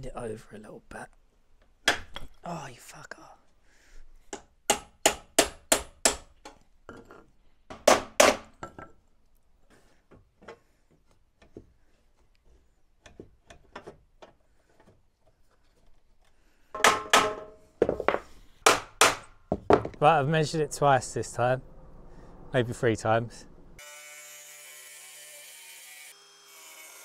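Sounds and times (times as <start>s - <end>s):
handling knocks: 16.8s - 20.0s.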